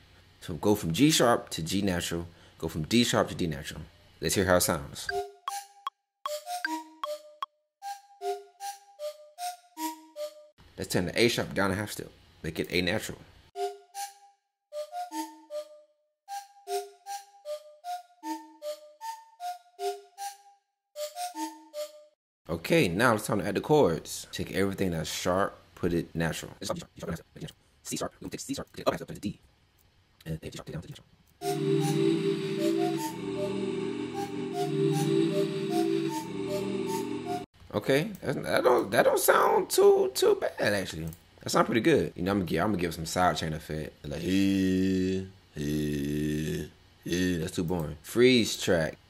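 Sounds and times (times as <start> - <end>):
synth flute melody: 31.4 - 37.5.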